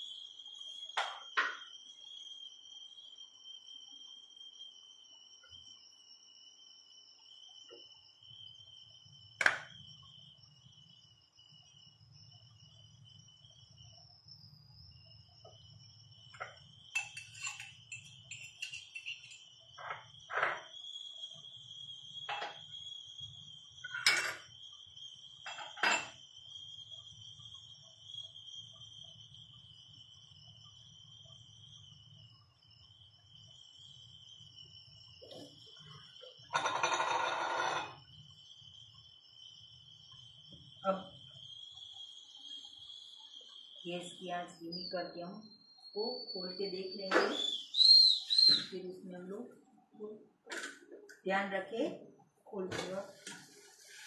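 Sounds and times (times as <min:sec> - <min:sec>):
kitchen utensils clicking: 0:17.0 - 0:19.4.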